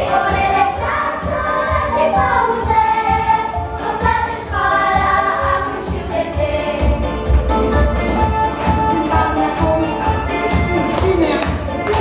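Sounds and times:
girls singing together: 0.0s - 7.1s
backing music with steady beat: 0.0s - 12.0s.

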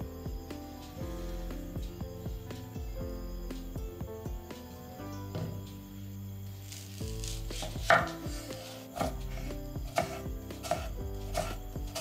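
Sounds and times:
knife slicing onion: 6.7s - 12.0s
knife knocking on wooden board: 7.5s - 9.2s, 9.9s - 12.0s.

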